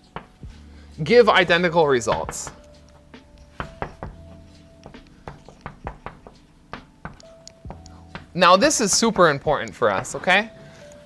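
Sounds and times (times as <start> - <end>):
chalk tapping on blackboard: 2.1 - 10.4.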